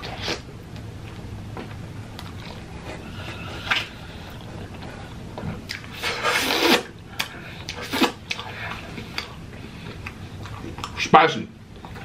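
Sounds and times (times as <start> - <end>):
open-mouthed chewing smacks: 1.1 - 6.0, 6.6 - 11.1.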